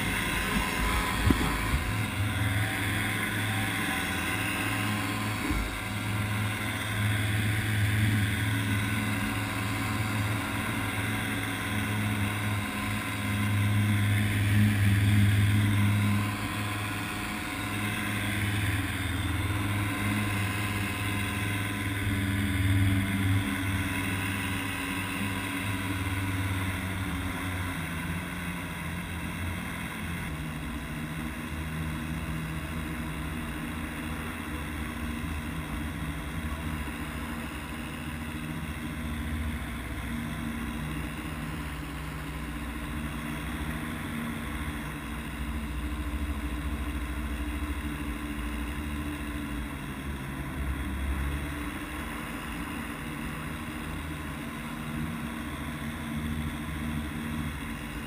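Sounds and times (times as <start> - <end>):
paramotor engine drone: 0.0 - 58.0.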